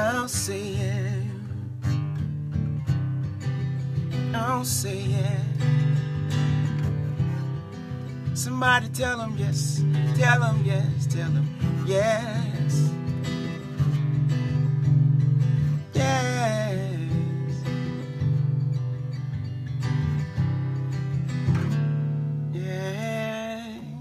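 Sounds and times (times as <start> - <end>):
person singing wordless phrases: 0.0 - 1.8, 4.3 - 5.6, 8.3 - 13.7, 15.9 - 17.7, 22.6 - 24.0
acoustic guitar strumming chords: 0.0 - 24.0.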